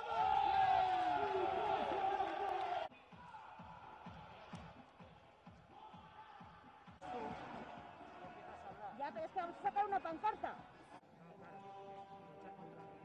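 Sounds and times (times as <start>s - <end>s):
crowd shouting: 0.0s - 4.8s
quiet arena sound: 0.0s - 13.0s.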